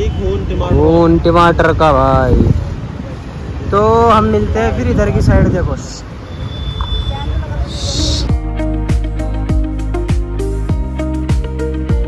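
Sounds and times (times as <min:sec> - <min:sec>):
music with deep bass beat: 0:08.2 - 0:12.0.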